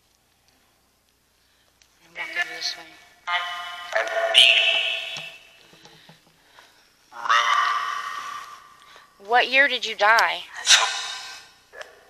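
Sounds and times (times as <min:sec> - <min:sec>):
voice-like held tone from phone: 0:03.3 - 0:05.4, 0:07.1 - 0:08.4.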